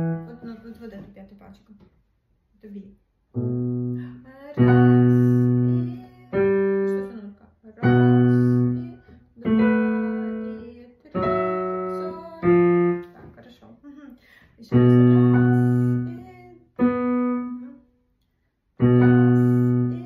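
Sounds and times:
digital piano chords: 0.0s - 0.5s, 3.4s - 7.2s, 7.8s - 13.2s, 14.7s - 17.7s, 18.8s - 20.0s.

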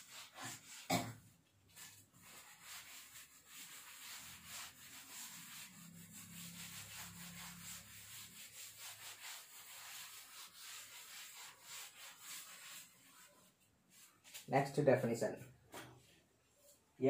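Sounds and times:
duster rubbing on chalkboard: 0.0s - 14.5s.

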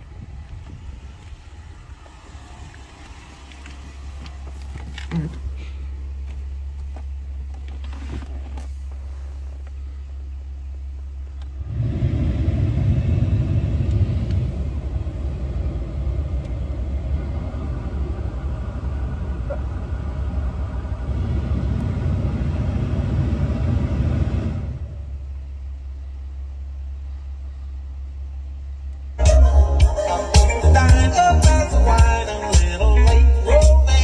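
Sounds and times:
engine idling hum: 0.0s - 34.0s
blower fan air rushing: 11.5s - 25.2s.

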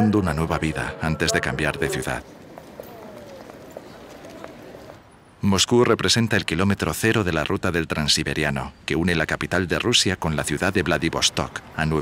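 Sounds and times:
faint distant voices: 0.1s - 5.1s
low background murmur: 0.4s - 5.1s.

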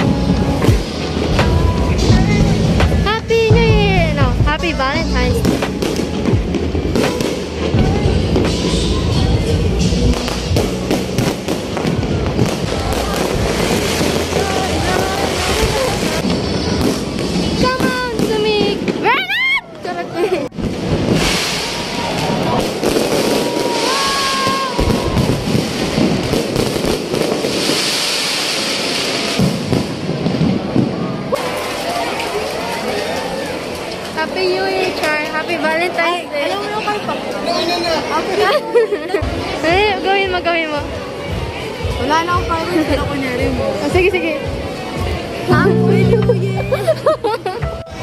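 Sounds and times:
loud music: 0.0s - 16.2s, 45.5s - 48.0s
fireworks bangs: 5.4s - 19.2s, 20.6s - 31.6s.

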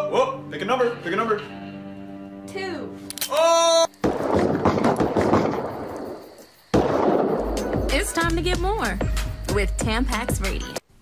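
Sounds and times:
firecrackers crackling: 3.9s - 8.4s.

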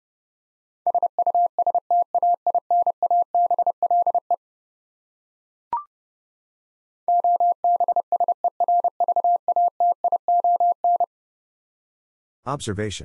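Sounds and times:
morse code keyed tone: 7.1s - 11.1s.

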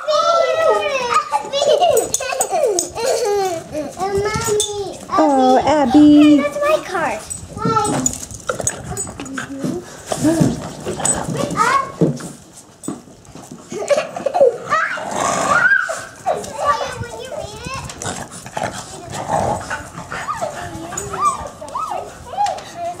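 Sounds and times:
children's voices: 0.0s - 12.4s, 13.7s - 23.0s.

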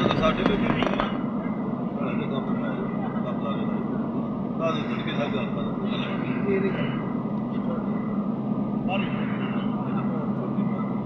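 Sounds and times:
car road and engine noise: 0.0s - 11.0s
faint voices: 0.0s - 11.0s.

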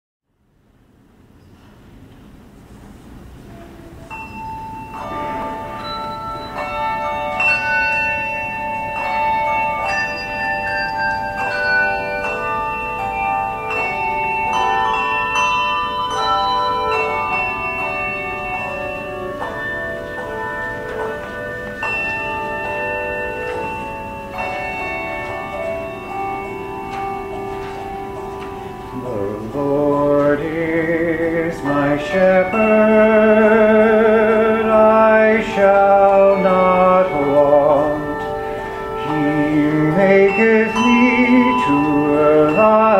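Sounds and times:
handbell choir ringing: 3.5s - 42.9s.

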